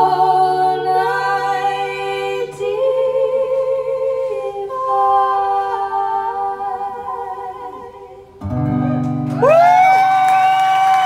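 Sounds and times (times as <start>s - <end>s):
women singing in harmony: 0.0s - 8.4s.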